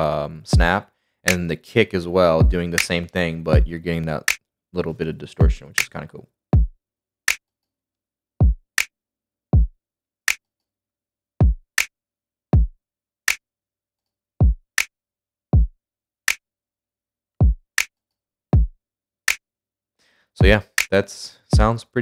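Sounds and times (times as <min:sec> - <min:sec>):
programmed drum beat: 0:00.0 - 0:01.5, 0:02.3 - 0:04.3, 0:05.3 - 0:06.7, 0:20.4 - 0:21.8
deep kick drum: 0:00.5 - 0:00.7, 0:02.4 - 0:02.6, 0:03.5 - 0:03.7, 0:05.4 - 0:05.6, 0:06.6 - 0:06.8, 0:08.4 - 0:08.6, 0:11.4 - 0:11.6, 0:12.6 - 0:12.8, 0:14.4 - 0:14.6, 0:17.4 - 0:17.6, 0:18.6 - 0:18.8
snappy snare drum: 0:20.4 - 0:21.0.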